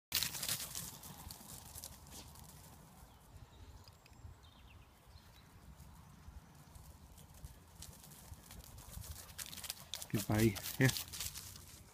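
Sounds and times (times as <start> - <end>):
dog running on wheat stubble: 0.1 - 2.9, 6.8 - 11.9.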